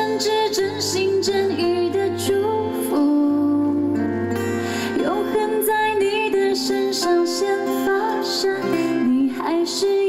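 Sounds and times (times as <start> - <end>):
guitar: 0.0 - 10.0
woman singing pop song: 0.0 - 10.0.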